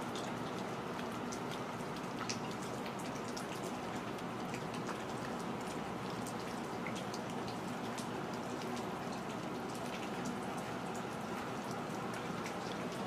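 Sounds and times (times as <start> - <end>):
outdoor background noise: 0.0 - 13.0.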